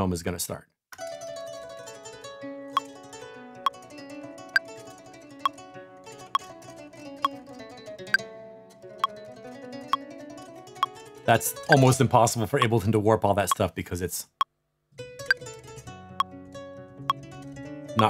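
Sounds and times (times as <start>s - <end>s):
free-tempo string music: 1.0s - 12.8s, 15.0s - 18.0s.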